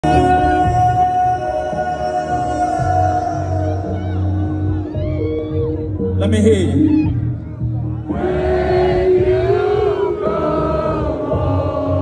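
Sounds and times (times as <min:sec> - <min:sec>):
loud hip-hop concert music: 0:00.0 - 0:12.0.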